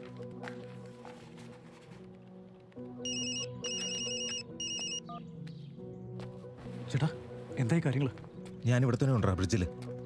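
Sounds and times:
soft background music: 0:00.0 - 0:10.0
mobile phone ringtone beeps: 0:03.0 - 0:05.2.

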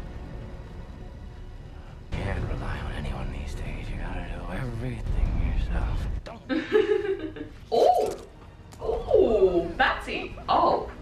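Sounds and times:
dark film score with deep bass: 0:00.0 - 0:11.0.

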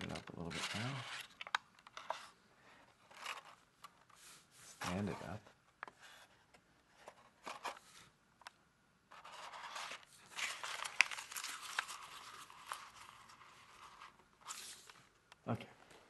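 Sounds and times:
paper crinkling and rustling: 0:09.1 - 0:15.1.

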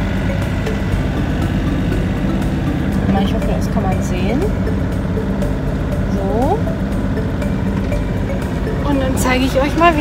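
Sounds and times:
boat engine rumble: 0:00.0 - 0:10.0.

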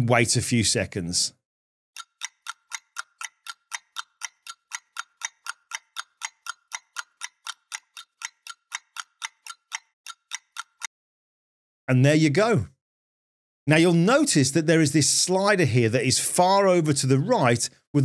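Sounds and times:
clock ticking: 0:02.0 - 0:10.9.

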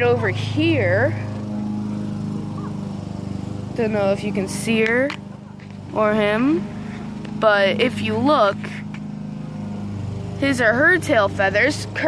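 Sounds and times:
lawn mower engine running: 0:00.0 - 0:12.0.

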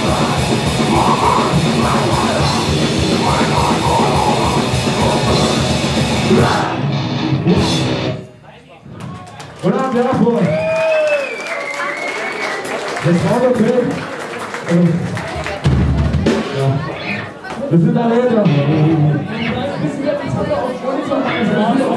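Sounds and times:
audience cheering and shouting: 0:00.0 - 0:07.2, 0:09.6 - 0:12.8
heavy rock band playing: 0:00.0 - 0:08.4, 0:18.4 - 0:19.2.

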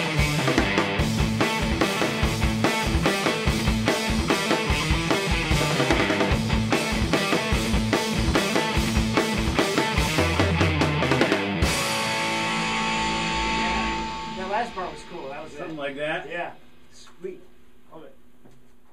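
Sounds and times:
drums steady beat: 0:00.0 - 0:16.0
electric guitar rock riff: 0:00.0 - 0:16.2
man talking: 0:14.3 - 0:18.2.

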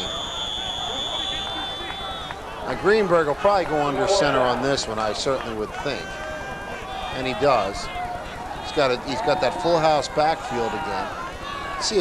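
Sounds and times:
referee's whistle blast: 0:00.0 - 0:02.4
faint crowd noise: 0:00.0 - 0:12.0.

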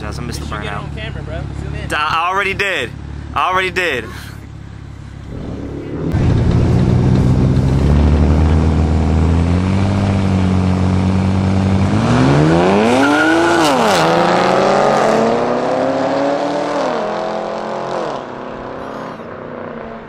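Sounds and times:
car engines accelerating hard: 0:00.0 - 0:20.0.

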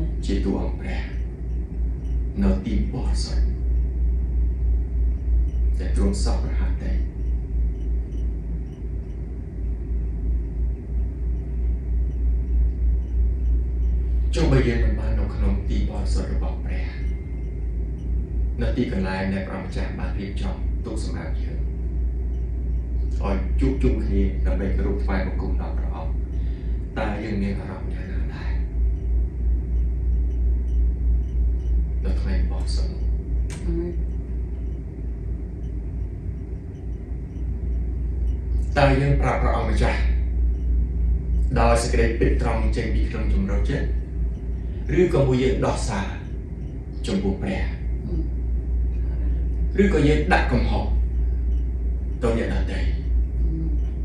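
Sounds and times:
low room rumble: 0:00.0 - 0:54.0
man speaking: 0:00.1 - 0:01.2, 0:02.4 - 0:03.6, 0:05.8 - 0:07.1, 0:14.3 - 0:17.2, 0:18.6 - 0:21.7, 0:23.2 - 0:26.2, 0:26.9 - 0:28.7, 0:32.0 - 0:33.1, 0:38.6 - 0:40.2, 0:41.4 - 0:44.0, 0:44.9 - 0:46.3, 0:47.0 - 0:48.0, 0:49.7 - 0:51.0, 0:52.2 - 0:53.1.

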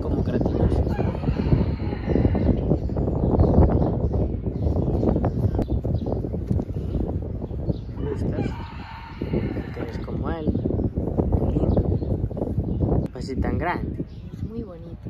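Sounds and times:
rooster crowing: 0:00.8 - 0:02.6, 0:08.3 - 0:10.0.

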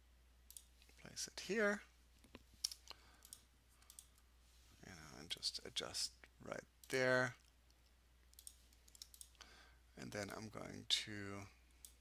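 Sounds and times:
computer mouse clicks: 0:02.2 - 0:04.2, 0:06.8 - 0:09.4.

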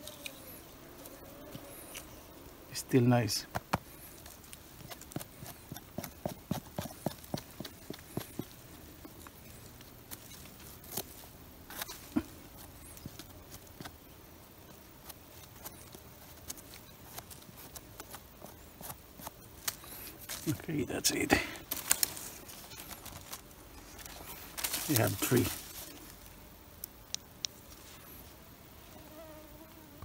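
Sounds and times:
knife scraping mushroom stem: 0:01.5 - 0:02.3, 0:03.5 - 0:08.6, 0:09.5 - 0:14.0, 0:14.8 - 0:20.6.

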